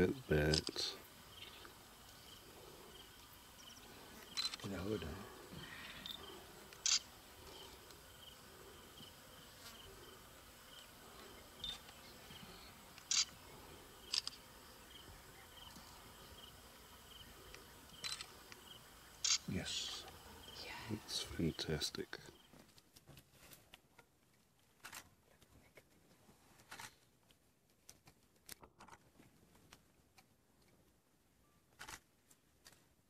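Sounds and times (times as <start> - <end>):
insect chirping: 0.0 - 22.6
sharp clicks: 0.5 - 0.8.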